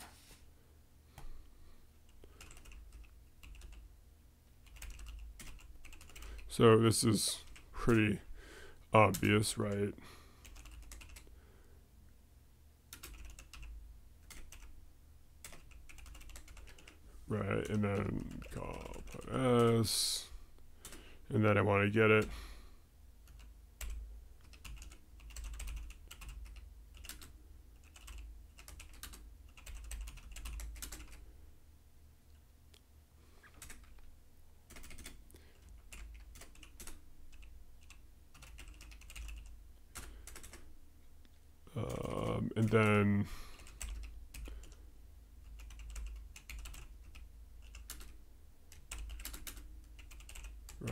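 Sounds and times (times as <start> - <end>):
typing on computer keyboard: 2.1 - 3.8, 4.6 - 6.5, 10.4 - 11.3, 12.9 - 14.7, 15.4 - 17.0, 23.3 - 31.2, 33.5 - 34.0, 34.7 - 40.6, 43.6 - 44.8, 45.4 - 50.8.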